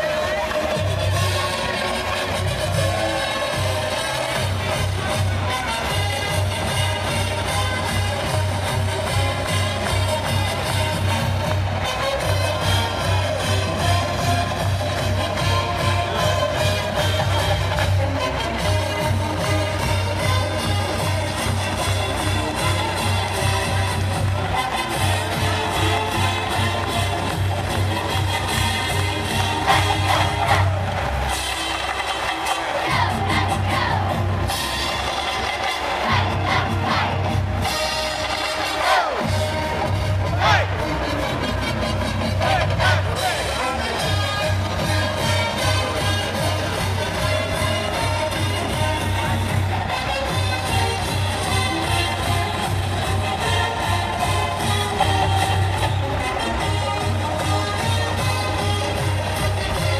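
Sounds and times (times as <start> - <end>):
upbeat band music: 0.0 - 59.9.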